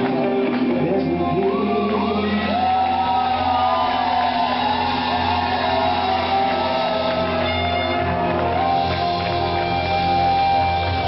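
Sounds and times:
live pop concert music: 0.0s - 11.0s
audience screaming and whooping: 1.1s - 11.0s.

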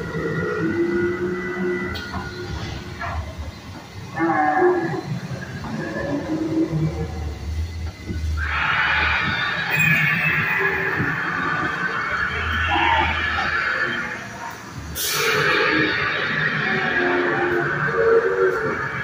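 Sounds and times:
animal roars and screeches: 0.0s - 19.0s
sharp hissing sound: 14.9s - 16.0s.

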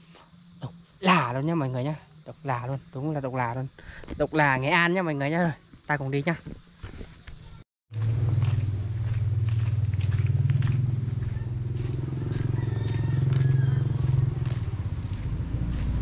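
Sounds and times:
motorcycle engine running: 7.9s - 16.0s.

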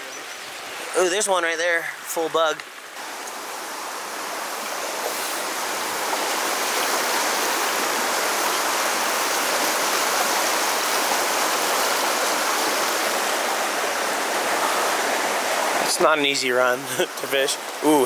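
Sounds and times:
river water rushing: 0.0s - 18.0s.

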